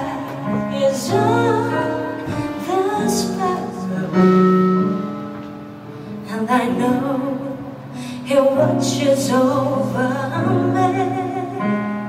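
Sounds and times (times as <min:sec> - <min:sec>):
woman singing gospel song: 0:00.0 - 0:04.6, 0:06.3 - 0:11.9.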